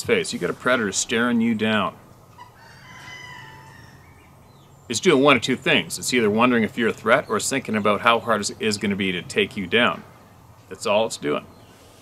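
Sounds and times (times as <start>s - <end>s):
rooster crowing: 2.4s - 4.4s.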